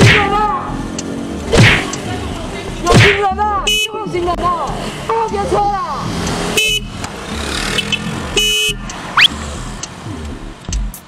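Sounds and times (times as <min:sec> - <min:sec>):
street traffic: 0:00.0 - 0:11.0
car horn toot: 0:03.6 - 0:04.0, 0:06.6 - 0:07.0, 0:07.8 - 0:09.3.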